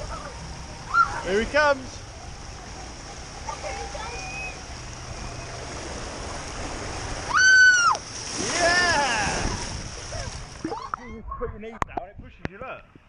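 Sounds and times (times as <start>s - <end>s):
water rushing down slide: 0.0s - 11.1s
person yelling: 7.3s - 9.6s.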